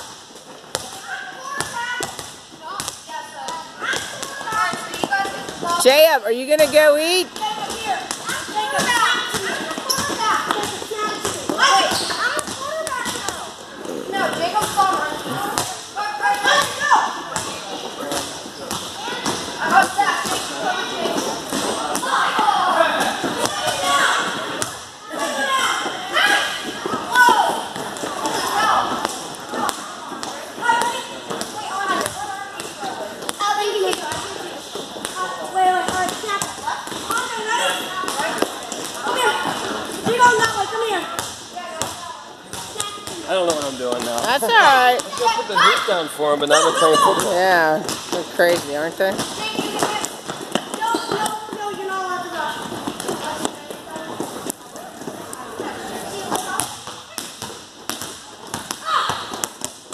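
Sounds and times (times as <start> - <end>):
children's voices and shouts: 0.9 - 5.8, 7.3 - 17.3, 19.0 - 34.6, 35.2 - 43.2, 44.6 - 47.3, 49.3 - 57.4, 58.7 - 59.4
ball bouncing on floor: 47.1 - 51.9.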